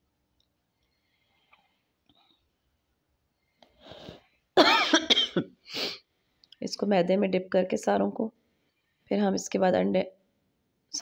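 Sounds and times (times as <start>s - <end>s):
woman coughing: 4.6s - 5.9s.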